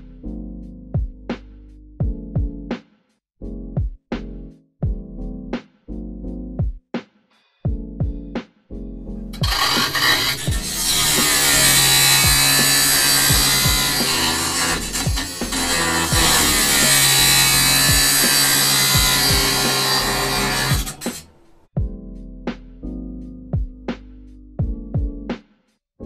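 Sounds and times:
music with bass drum beat: 0.0s - 9.5s, 12.0s - 12.7s, 13.3s - 14.2s, 14.9s - 18.2s, 18.9s - 19.6s, 21.8s - 25.7s
angle grinder grinding metal: 9.4s - 21.6s.

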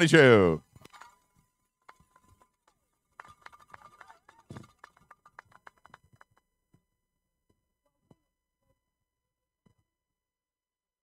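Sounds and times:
small crowd clapping: 3.1s - 6.5s.

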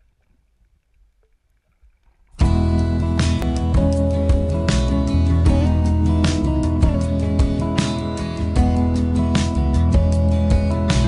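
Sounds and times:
soft ticks underwater: 0.0s - 2.4s.

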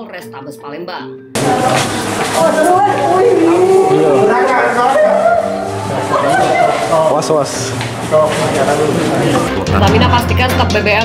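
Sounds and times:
people talking: 0.0s - 11.0s.

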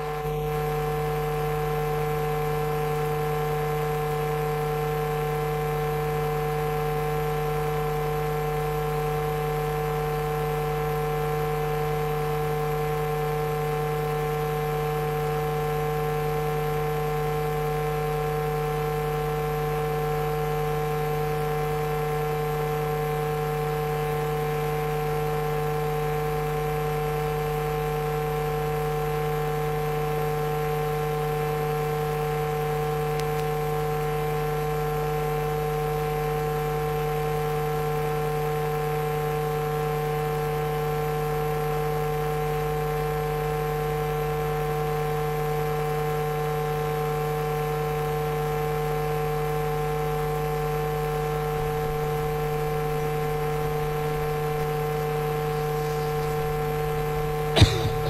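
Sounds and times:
steady electrical hum: 0.0s - 25.1s, 50.4s - 58.0s.

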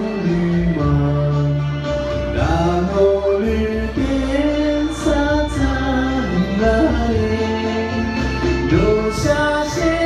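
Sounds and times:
man singing into microphone: 0.0s - 10.0s
recorded musical backing track: 0.0s - 10.0s.

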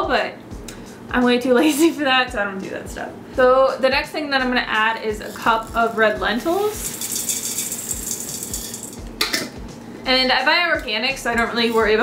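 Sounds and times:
lentils pouring into a metal pot: 5.3s - 9.0s.

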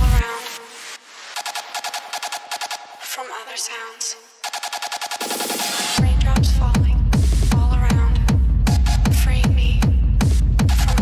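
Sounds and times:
heavy kick drum: 0.0s - 0.3s, 4.5s - 11.0s
hard techno track: 0.0s - 11.0s.

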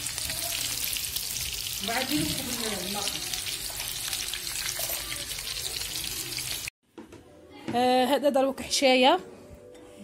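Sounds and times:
food sizzling in hot oil: 0.0s - 6.7s.

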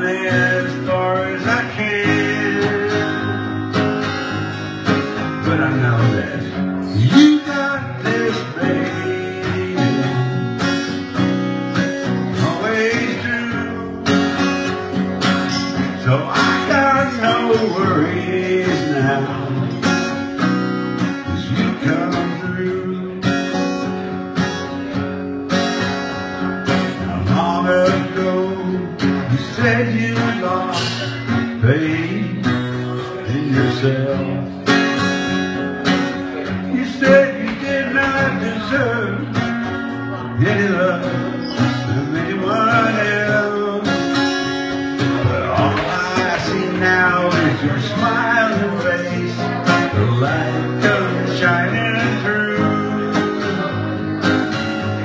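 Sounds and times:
acoustic guitar strumming: 0.0s - 55.0s
man singing: 0.0s - 55.0s.

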